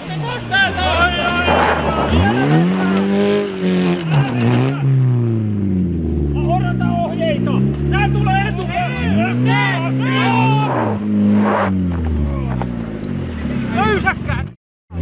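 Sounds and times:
car engine revving hard: 0:00.6 - 0:13.8
people shouting: 0:08.8 - 0:11.0.

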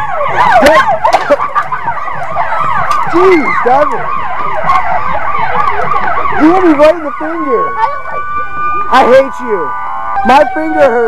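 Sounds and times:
emergency vehicle sirens wailing: 0:00.0 - 0:11.0.

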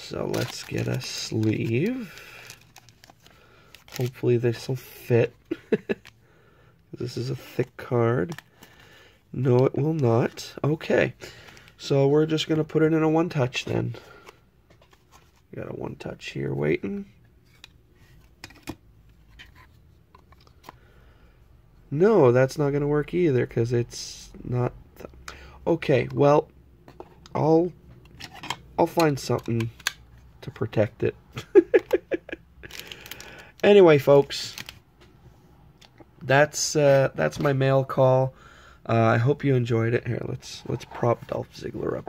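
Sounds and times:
card sleeve rustling: 0:00.0 - 0:05.1, 0:34.2 - 0:34.8.

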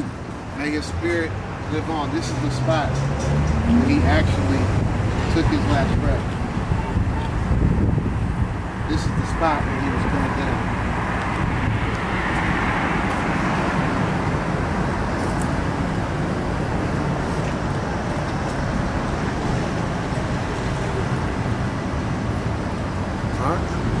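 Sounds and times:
street traffic hum: 0:00.0 - 0:24.0.

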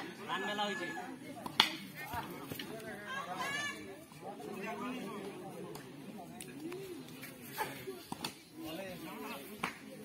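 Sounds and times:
onlookers' voices: 0:00.0 - 0:10.0.

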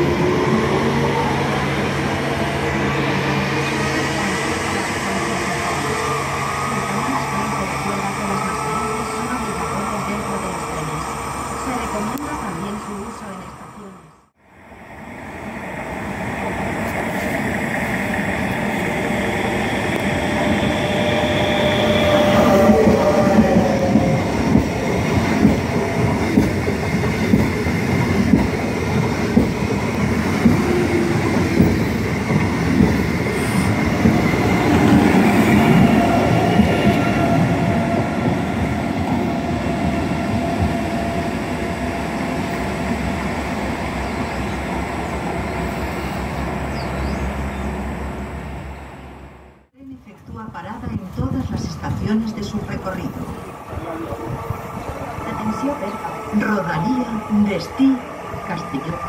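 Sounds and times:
high train whine: 0:00.0 - 0:59.0
train wheels rumbling on rails: 0:15.8 - 0:49.3
rhythmic rail joint clack: 0:16.6 - 0:45.4.

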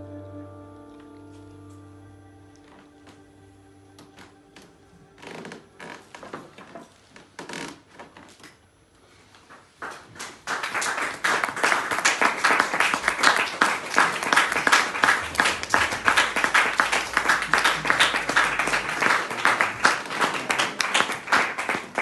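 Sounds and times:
group applauding: 0:09.5 - 0:22.0.

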